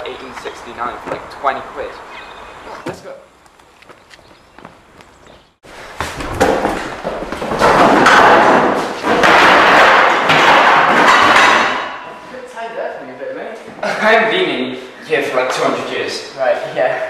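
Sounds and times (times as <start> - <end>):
clattering footsteps: 2.7 - 12.3
loud thumps: 6.0 - 12.0.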